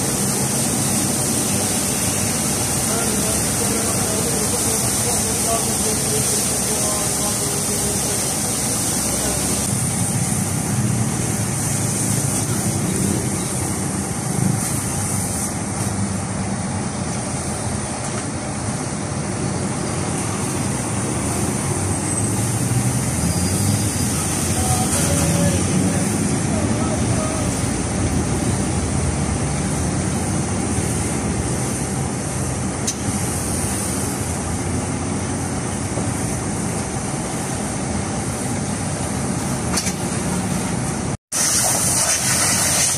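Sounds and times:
pressure washer spraying water: 0.0 - 16.0, 20.1 - 34.8, 41.3 - 42.9.

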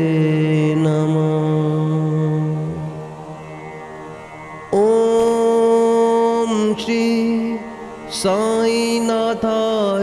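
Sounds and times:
mantra chanting: 0.0 - 3.4, 4.7 - 10.0.

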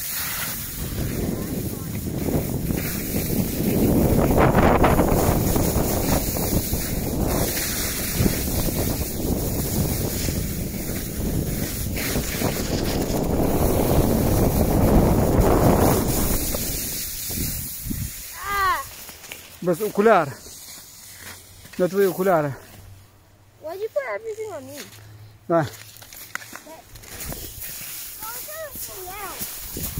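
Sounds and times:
skis sliding over snow: 0.0 - 22.8, 25.6 - 29.9
wind buffeting microphone: 0.3 - 18.7, 27.2 - 29.9
child's voice: 18.3 - 19.0, 23.6 - 25.0, 26.6 - 26.9, 28.1 - 29.5.

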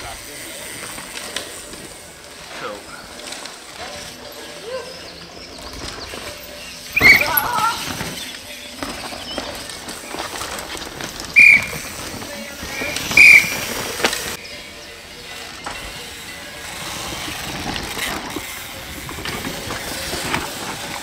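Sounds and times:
bike tyres scrabbling over dirt: 0.0 - 21.0
high-pitched squeals: 6.1 - 9.7, 11.2 - 17.6.

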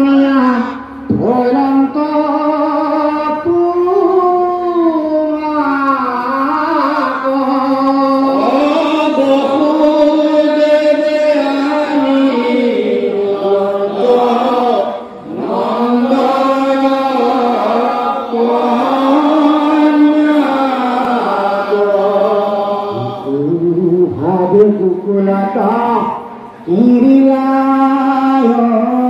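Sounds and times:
men chanting a hymn: 0.0 - 29.0.

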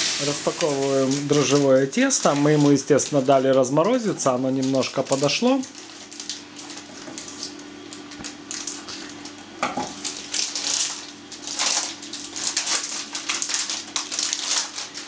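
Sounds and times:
packaging crinkling: 0.0 - 15.0.

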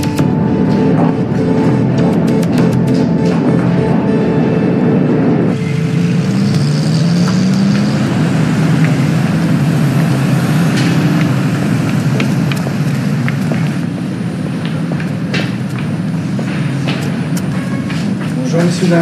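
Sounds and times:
engine rising in pitch: 0.0 - 17.4
cars going by: 0.0 - 19.0.

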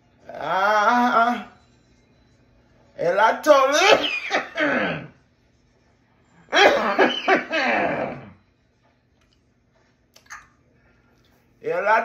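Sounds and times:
person coughing: 3.8 - 5.2, 6.5 - 8.3.

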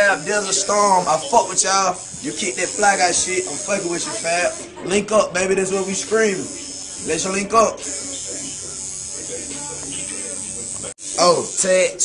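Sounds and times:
tattoo machine buzzing: 0.0 - 4.8, 5.4 - 12.0
faint voices: 0.0 - 12.0.

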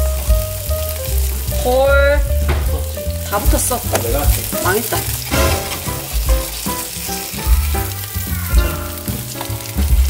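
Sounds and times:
background music with bass notes: 0.0 - 10.0
tofu sizzling in oil: 0.0 - 10.0
spatula scraping pan: 3.7 - 7.0.

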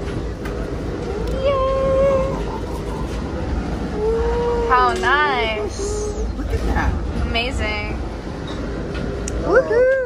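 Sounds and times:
low rumble: 0.0 - 10.0.

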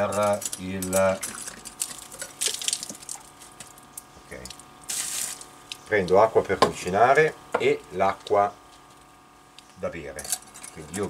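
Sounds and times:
water hissing: 4.9 - 5.4.

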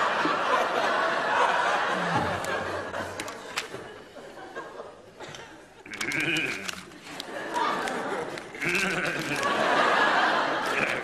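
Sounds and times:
studio audience laughing: 0.0 - 11.0.

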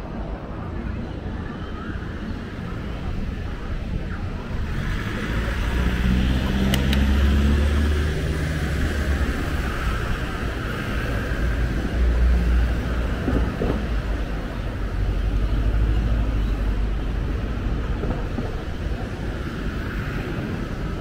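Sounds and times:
road traffic passing: 0.0 - 21.0
pitched engine hum: 4.4 - 21.0.

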